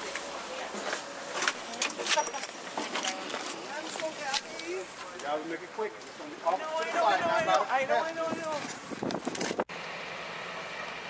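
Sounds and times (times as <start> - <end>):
metallic jingles: 1.1 - 4.8.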